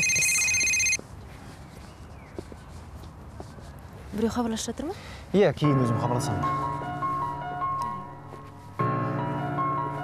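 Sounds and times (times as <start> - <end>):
electronic telephone ringing: 0.0 - 1.0.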